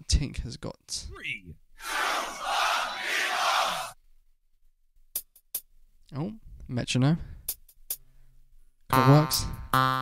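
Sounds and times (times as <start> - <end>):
crowd cheering: 1.8 - 4.0.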